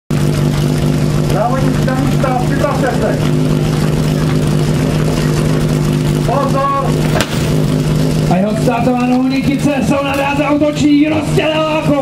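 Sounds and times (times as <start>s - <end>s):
pump engine idling: 0.1s - 12.0s.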